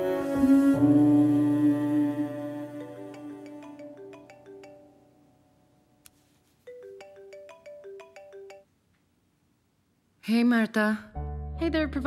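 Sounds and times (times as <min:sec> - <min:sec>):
mobile phone ringtone: 0:02.8 - 0:05.1, 0:06.7 - 0:08.7.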